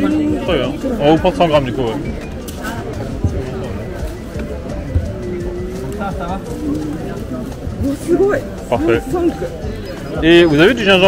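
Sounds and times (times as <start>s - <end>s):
distant chatter: 0.0s - 11.0s
music: 0.0s - 11.0s.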